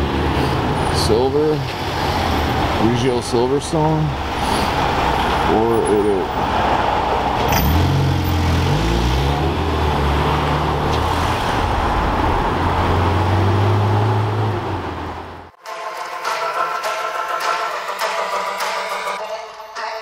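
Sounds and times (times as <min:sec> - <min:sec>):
light traffic: 0:00.0 - 0:15.6
sports car engine passing: 0:06.2 - 0:15.5
music: 0:15.6 - 0:20.0.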